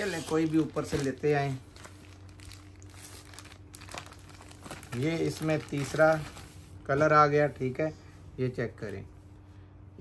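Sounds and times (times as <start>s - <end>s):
plastic packaging crinkling: 0.0s - 6.6s.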